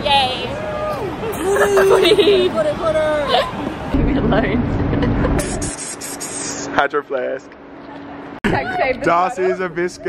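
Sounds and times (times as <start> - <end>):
woman exclaiming or laughing: 0.9 - 3.6
low hum with rumble: 3.7 - 10.0.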